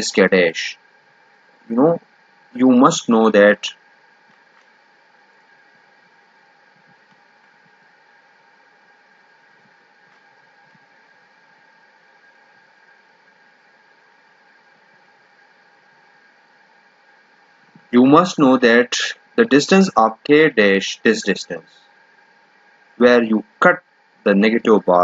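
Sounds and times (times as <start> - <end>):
faint steady tones: 0.0 - 25.0
microphone hiss: 0.0 - 25.0.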